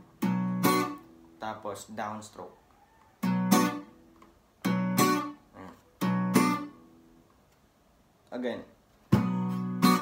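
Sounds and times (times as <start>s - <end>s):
acoustic guitar strumming: 0.0s - 1.8s, 3.2s - 7.2s, 9.0s - 10.0s.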